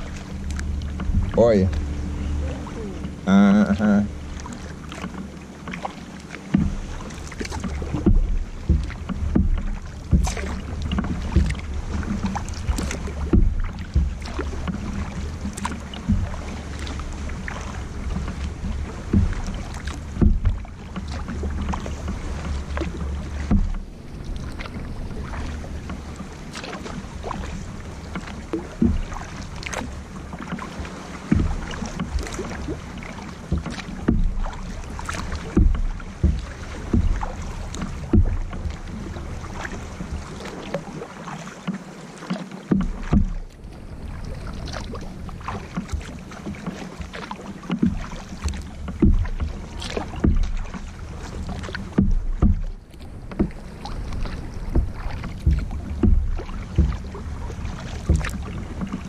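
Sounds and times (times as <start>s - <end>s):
steady low rumble: 0.0s - 40.6s, 42.9s - 46.5s, 47.8s - 59.0s
paddle splashing in water: 0.0s - 59.0s
water dripping off paddle: 0.0s - 59.0s.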